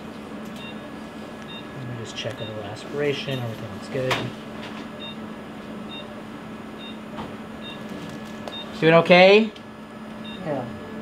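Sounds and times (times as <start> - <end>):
steady low hum: 0.0 - 11.0
patient monitor beeps: 0.6 - 0.9, 1.5 - 3.6, 5.0 - 5.2, 5.9 - 6.2, 6.8 - 7.0, 7.6 - 8.8, 10.2 - 10.7.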